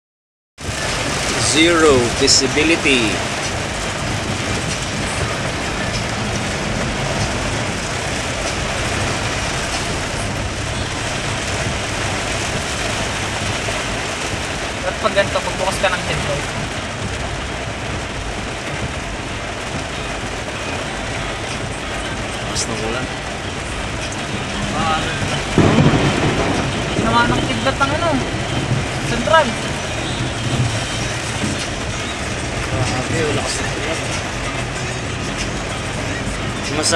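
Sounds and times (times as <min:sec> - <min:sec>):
engine and road rumble: 0:00.6 - 0:36.9
heavy rain on car roof: 0:00.6 - 0:36.9.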